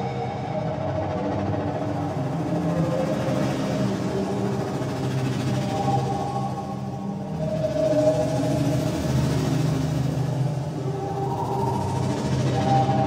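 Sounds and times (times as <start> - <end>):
ambient synthesizer drones: 0.0 - 13.0.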